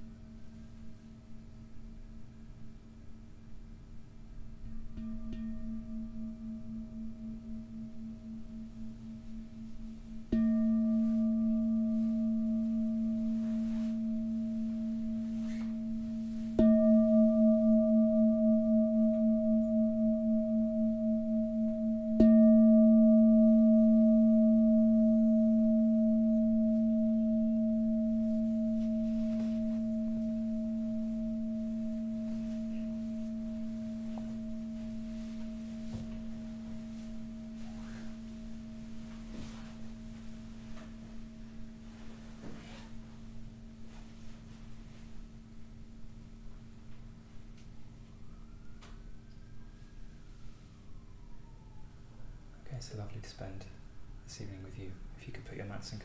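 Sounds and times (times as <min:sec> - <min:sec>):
singing bowl ringing: 0:04.6 - 0:46.4.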